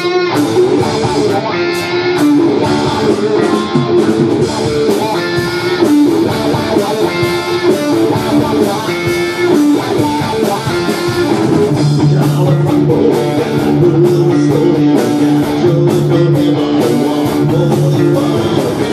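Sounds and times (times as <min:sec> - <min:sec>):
bass guitar: 0:00.0 - 0:18.9
drums: 0:00.0 - 0:18.9
electric guitar: 0:00.0 - 0:18.9.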